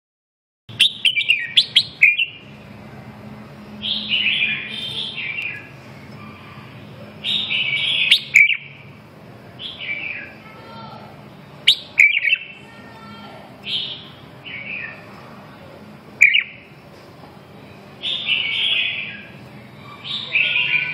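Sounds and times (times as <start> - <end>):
birds singing whistled phrases: 0.7 - 2.6, 3.8 - 9.0, 9.6 - 10.5, 11.6 - 12.7, 13.6 - 15.1, 16.2 - 16.8, 17.6 - 20.9.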